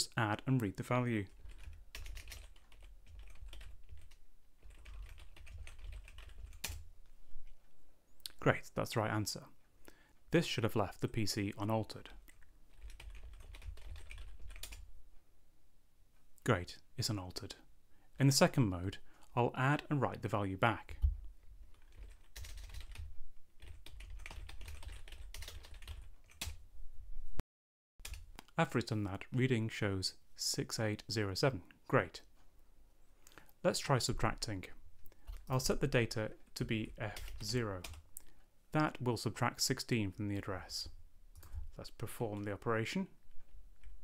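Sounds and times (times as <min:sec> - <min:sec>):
typing on computer keyboard: 0:01.3 - 0:06.8, 0:12.3 - 0:14.8, 0:21.7 - 0:26.6.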